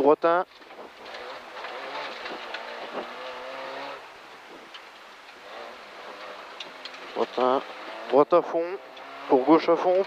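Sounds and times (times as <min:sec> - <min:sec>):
rally car engine from cockpit: 0:00.8 - 0:10.0.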